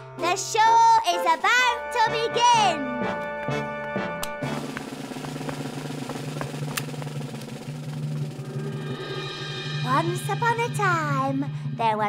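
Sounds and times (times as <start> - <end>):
low drum roll: 4.4 - 11.2.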